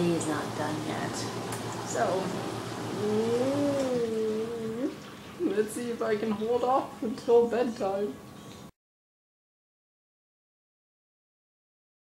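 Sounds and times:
woman humming: 2.9s - 5.0s.

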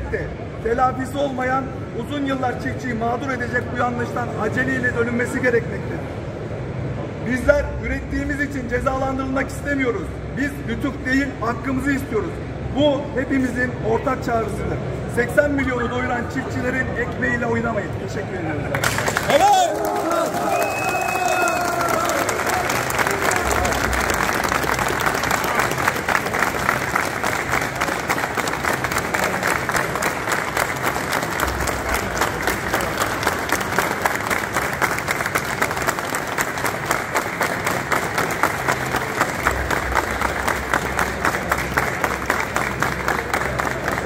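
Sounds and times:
crowd applauding: 18.7s - 44.0s.

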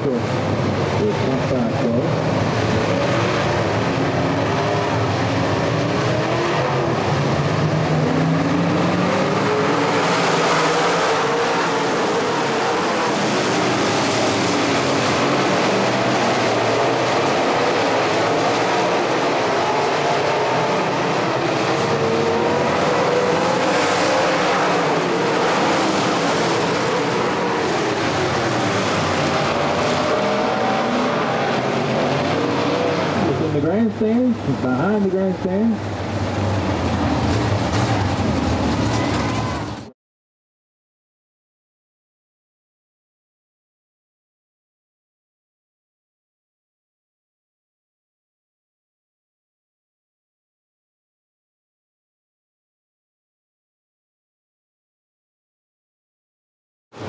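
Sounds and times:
race car engines passing: 0.0s - 39.9s.

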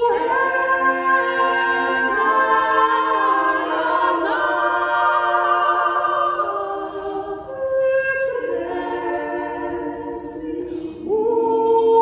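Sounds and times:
women singing a cappella: 0.0s - 12.0s.

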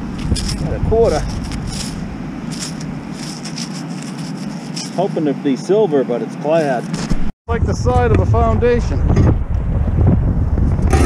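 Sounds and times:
outdoor background hum: 0.0s - 11.0s
low rumble: 7.2s - 11.0s.

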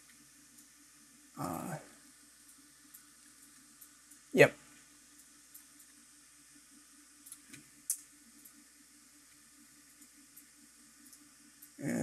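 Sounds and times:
man speaking: 1.4s - 1.9s, 11.8s - 12.0s
computer mouse clicks: 7.2s - 8.6s.

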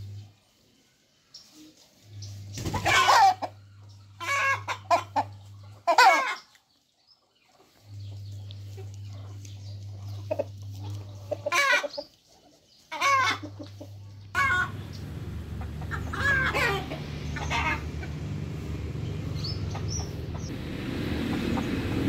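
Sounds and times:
chicken squawking and clucking: 2.6s - 6.6s, 8.7s - 20.5s
low hum: 13.7s - 22.0s.

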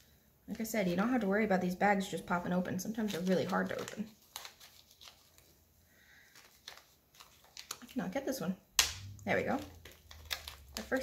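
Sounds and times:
plastic zip seal clicks and rustles: 8.8s - 11.0s.

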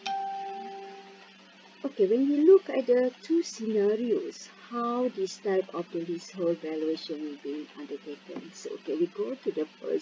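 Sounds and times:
electronic chime: 0.0s - 1.2s.

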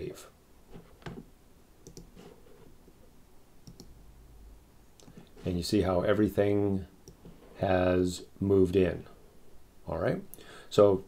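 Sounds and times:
computer mouse clicks: 1.8s - 2.2s, 3.6s - 3.9s, 5.0s - 5.2s.

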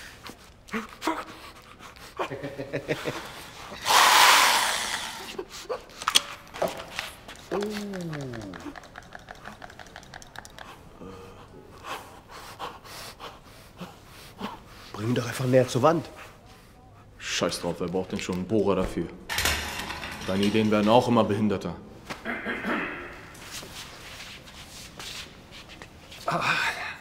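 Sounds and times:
loud burst of noise: 3.8s - 5.3s
man panting and gasping: 10.6s - 14.9s.

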